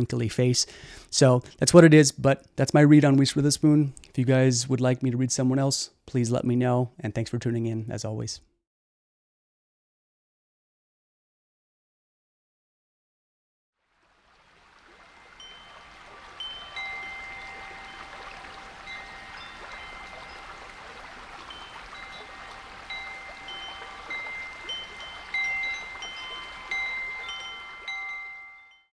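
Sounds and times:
soft steady hiss: 0:13.8 - 0:28.9
wind chimes ringing: 0:14.9 - 0:28.9.

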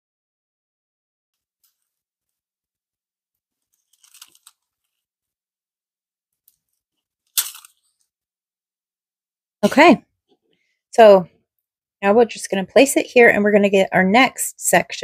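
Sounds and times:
paper crinkling: 0:03.6 - 0:05.1
paper rustling: 0:03.6 - 0:05.1.

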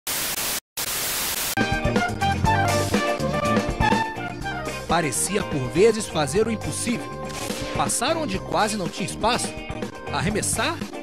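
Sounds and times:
television static hiss: 0:00.1 - 0:01.6
music with bass and drums: 0:01.6 - 0:11.0.

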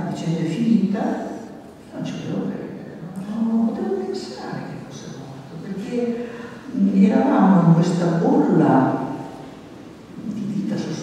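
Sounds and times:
woman talking into a microphone: 0:00.0 - 0:09.3, 0:10.2 - 0:11.0.

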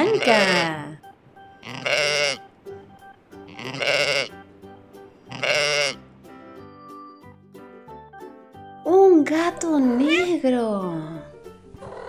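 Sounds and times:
sheep bleating: 0:00.0 - 0:00.8, 0:01.6 - 0:02.5, 0:03.4 - 0:04.4, 0:05.2 - 0:06.0
soft background music: 0:00.0 - 0:12.0.

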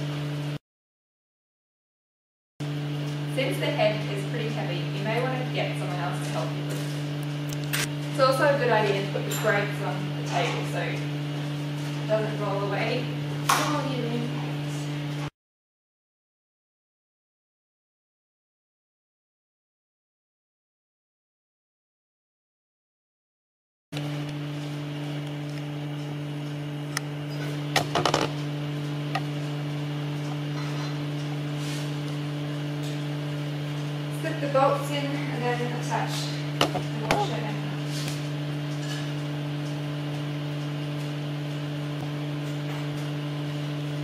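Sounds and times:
steady low hum: 0:24.0 - 0:44.0.

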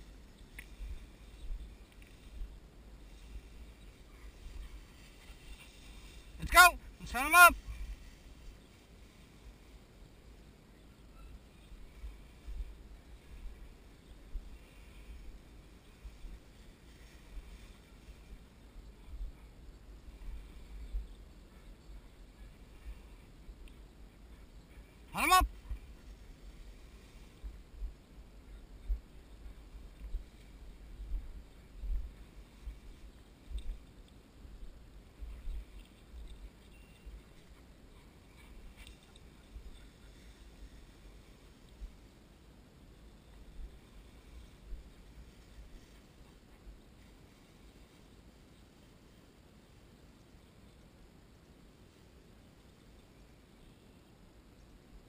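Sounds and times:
wind buffeting microphone: 0:11.6 - 0:42.1.

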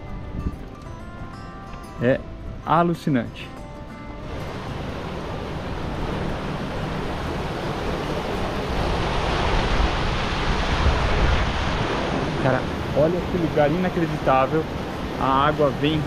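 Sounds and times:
wind buffeting microphone: 0:00.0 - 0:02.8, 0:03.7 - 0:16.0
river water rushing over rocks: 0:04.2 - 0:16.0.

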